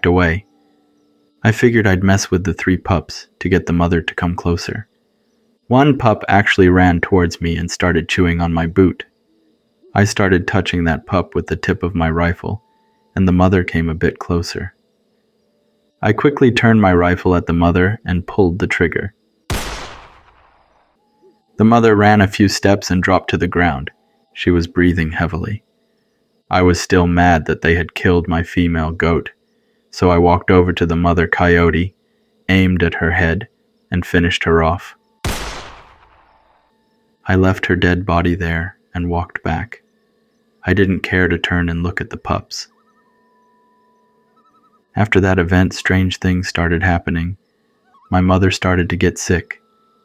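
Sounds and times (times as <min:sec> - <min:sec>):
low hum of held tones: 0:00.0 - 0:50.0
person narrating: 0:05.7 - 0:09.0, 0:09.9 - 0:12.6, 0:13.2 - 0:14.7, 0:16.0 - 0:19.1, 0:21.6 - 0:25.6, 0:26.5 - 0:29.3, 0:32.5 - 0:35.0, 0:40.6 - 0:42.7, 0:45.0 - 0:47.4, 0:48.1 - 0:49.6
rifle shot with echo: 0:19.5 - 0:20.9, 0:35.2 - 0:36.5
warbling chirps: 0:32.5 - 0:50.0.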